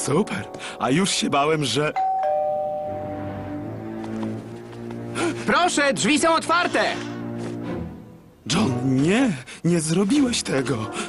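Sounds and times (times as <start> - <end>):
two-tone doorbell chime: 2.0 - 3.3.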